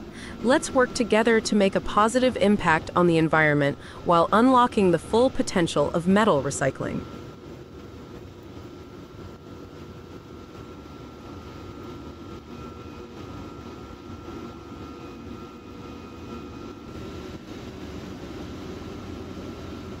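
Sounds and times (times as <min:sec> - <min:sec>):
thin steady whine: 0:00.0 - 0:20.0.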